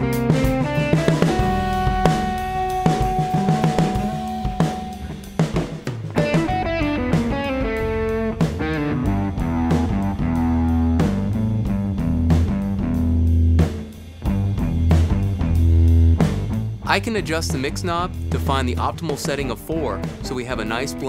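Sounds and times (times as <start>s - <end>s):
rock instrumental music: 0.0s - 21.0s.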